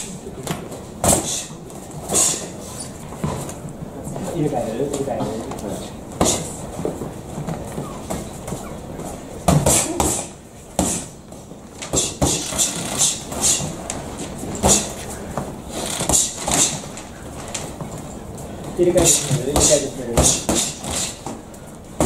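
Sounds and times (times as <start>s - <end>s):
hissing breath bursts: 1.2s - 2.9s.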